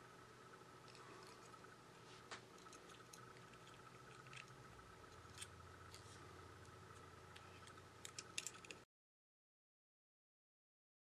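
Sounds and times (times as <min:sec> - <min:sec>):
faint steady hum: 0:00.0 - 0:08.9.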